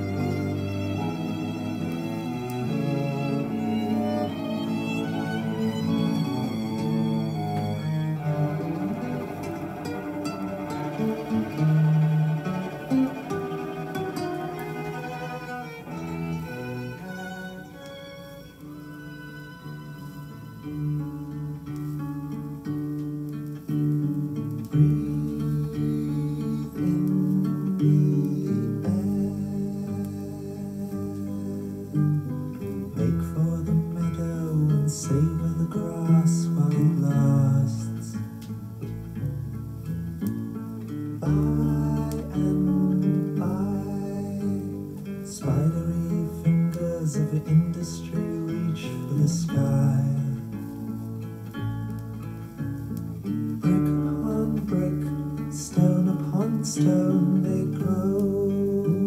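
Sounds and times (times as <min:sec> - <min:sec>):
slow bowed cello music: 0:00.0 - 0:23.7, 0:24.3 - 0:59.0.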